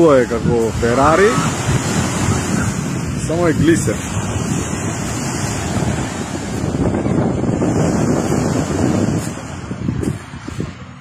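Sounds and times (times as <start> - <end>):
waves washing onto pebble beach: 0.0 - 9.7
wind buffeting microphone: 0.0 - 11.0.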